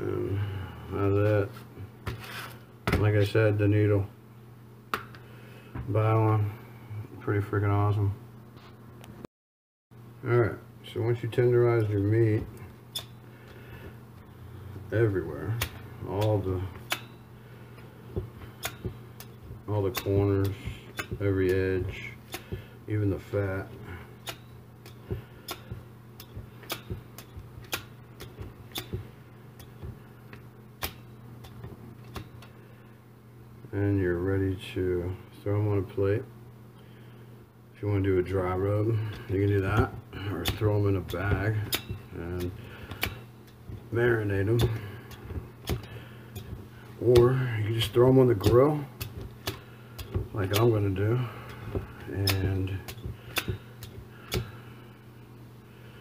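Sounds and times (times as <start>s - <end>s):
low background hum: 0.0s - 9.3s, 9.9s - 56.0s
meat tenderizer clicking into steak: 24.2s - 29.0s, 40.4s - 43.2s, 52.2s - 54.5s.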